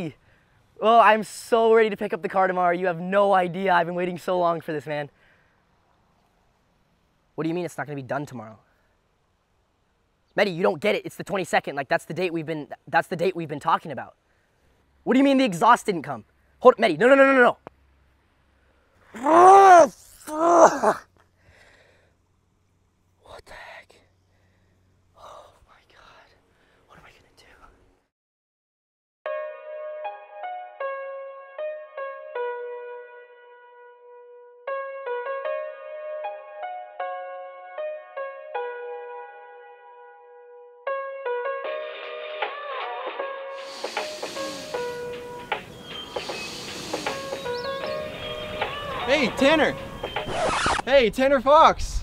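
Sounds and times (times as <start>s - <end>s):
faint breaths: 0.2s - 0.8s, 5.1s - 5.9s, 8.6s - 9.2s, 14.2s - 15.0s, 16.2s - 16.6s, 21.2s - 22.4s, 23.2s - 27.9s, 43.6s - 47.8s
man muttering: 19.2s - 21.1s, 44.0s - 45.0s
calm background music: 29.3s - 50.3s
steady hiss: 43.6s - 52.0s.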